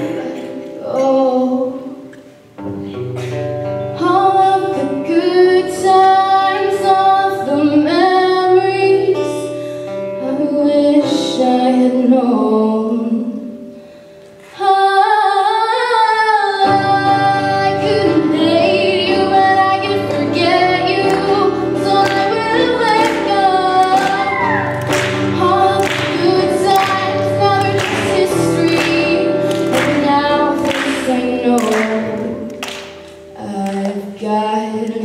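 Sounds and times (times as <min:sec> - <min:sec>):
woman singing: 0:00.0 - 0:02.1, 0:03.9 - 0:13.7, 0:14.4 - 0:35.0.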